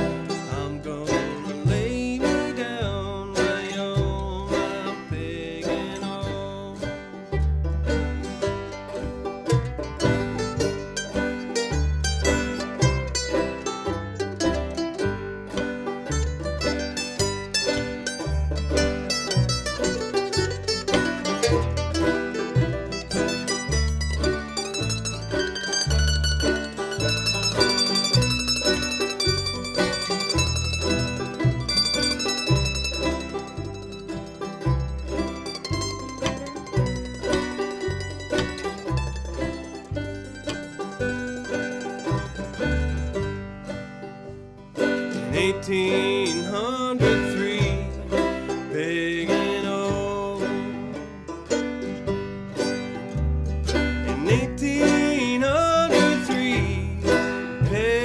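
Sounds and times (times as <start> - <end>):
mandolin: 0.0 - 58.0
string band playing: 0.0 - 58.0
upright bass plucking: 0.0 - 58.0.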